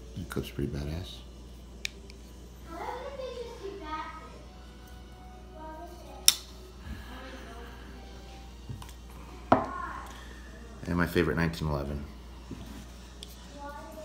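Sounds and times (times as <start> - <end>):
folding knife metal clicks: 6.2 - 6.5.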